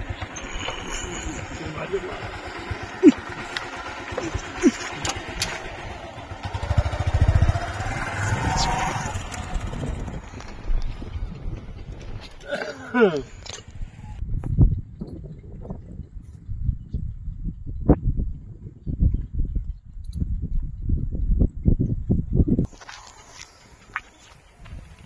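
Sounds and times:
motorcycle engine putter: 0.0s - 14.2s.

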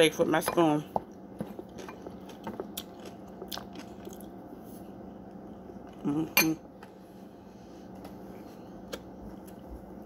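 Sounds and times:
chewing cornstarch: 1.4s - 4.4s.

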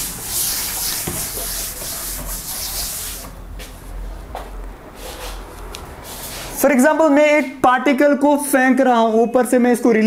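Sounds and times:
cloth duster wiping chalkboard: 0.0s - 3.8s, 5.0s - 6.8s.

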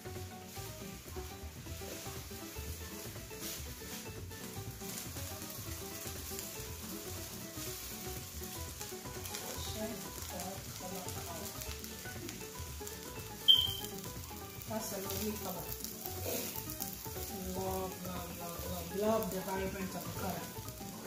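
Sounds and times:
rice sizzling in a pot: 0.0s - 21.0s
sharp high-pitched clink: 13.5s - 13.8s.

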